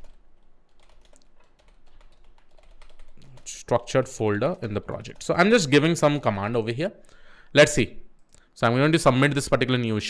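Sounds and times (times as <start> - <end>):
typing on computer keyboard: 0.0 - 3.6.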